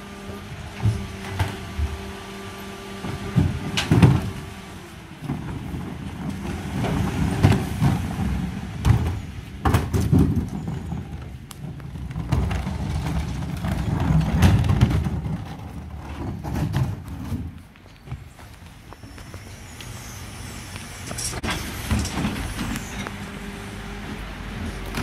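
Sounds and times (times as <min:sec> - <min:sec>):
truck engine rumble: 0:00.0 - 0:25.0
wheelie bins rattling on tarmac: 0:02.9 - 0:19.4.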